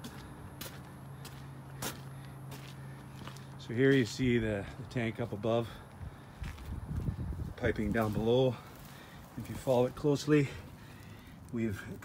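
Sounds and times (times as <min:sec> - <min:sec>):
footsteps scuffing on soil: 0:00.0 - 0:11.3
steady low hum: 0:00.0 - 0:12.0.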